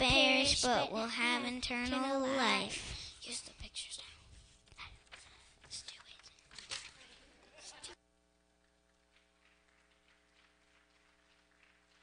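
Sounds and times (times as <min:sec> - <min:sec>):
faint steady hum: 0:00.0 - 0:12.0
faint rustles and ticks: 0:03.2 - 0:06.9.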